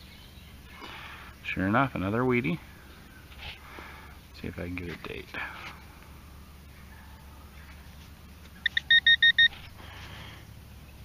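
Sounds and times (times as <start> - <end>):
metal detector beeps: 8.6 - 9.7.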